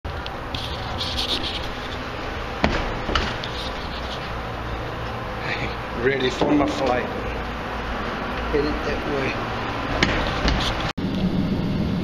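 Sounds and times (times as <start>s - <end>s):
steady low hum: 0.1s - 12.0s
sharp knocks: 2.6s - 4.0s, 9.9s - 10.9s.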